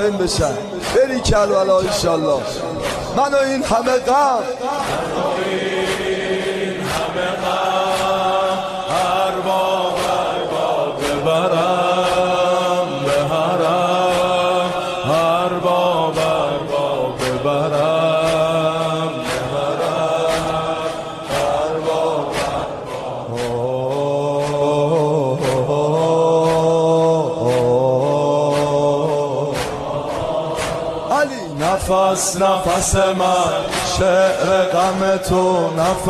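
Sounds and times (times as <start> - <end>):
steady sharp strikes: 0.0 - 36.0
voices chanting a melody: 4.2 - 36.0.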